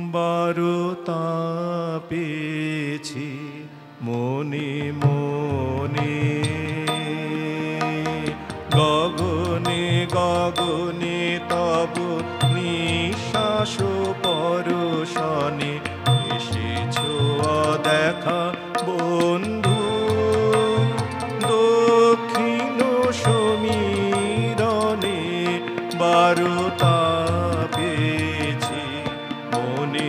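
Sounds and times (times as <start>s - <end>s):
man singing: 0.0s - 30.0s
harmonium drone: 5.4s - 30.0s.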